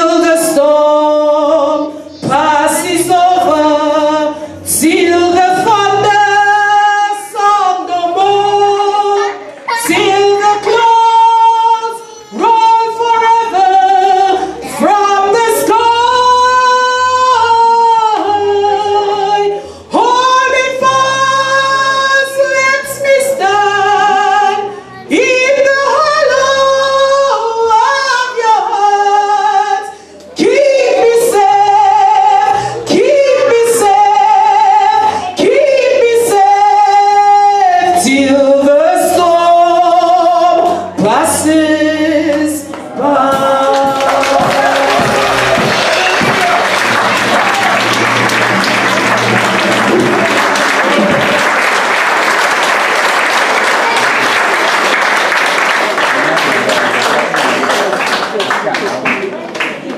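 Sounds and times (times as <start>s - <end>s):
woman singing into microphone: 0.0s - 46.7s.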